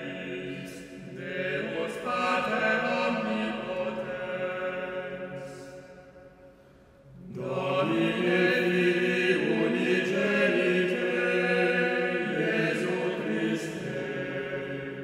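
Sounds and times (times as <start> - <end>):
male ensemble singing chant chords: 0.0 - 5.9, 7.2 - 15.0.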